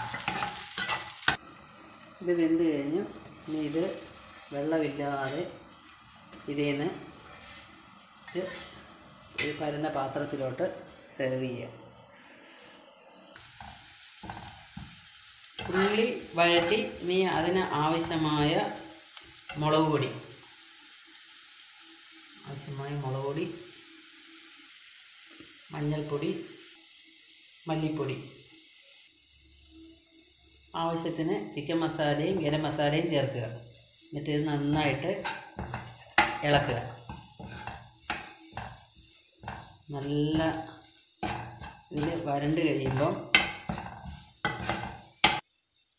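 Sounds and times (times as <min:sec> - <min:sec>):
spatula scraping a pan: 0:00.0 - 0:01.4, 0:03.1 - 0:09.8, 0:13.4 - 0:19.8, 0:32.2 - 0:45.4
food frying: 0:00.0 - 0:11.5, 0:13.4 - 0:45.4
onions sizzling in hot oil: 0:00.0 - 0:45.9.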